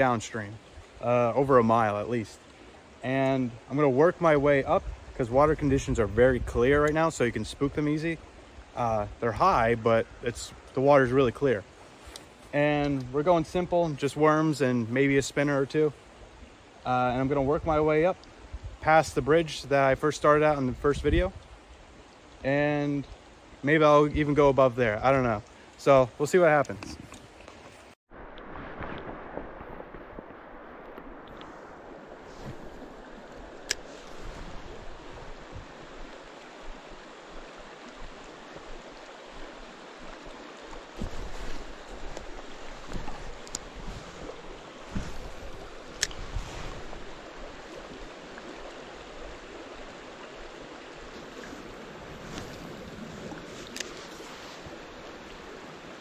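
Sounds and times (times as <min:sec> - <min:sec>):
creek water over stones: 0:00.0 - 0:56.0.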